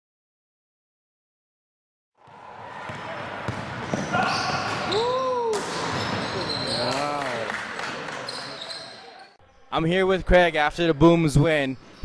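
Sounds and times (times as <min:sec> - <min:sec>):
basketball bouncing on court: 0:02.2 - 0:05.0, 0:05.6 - 0:06.8.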